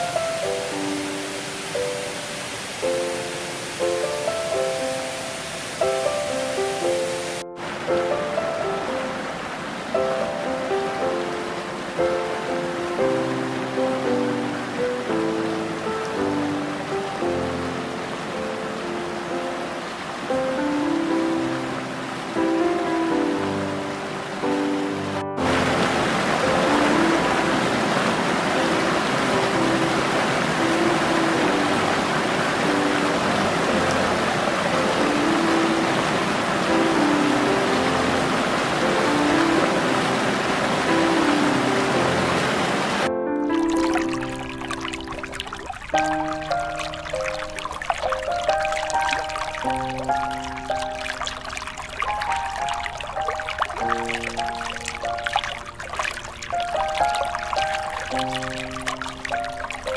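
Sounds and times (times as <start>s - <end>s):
calm relaxation music: 0.0s - 59.9s
flowing water: 0.0s - 59.9s.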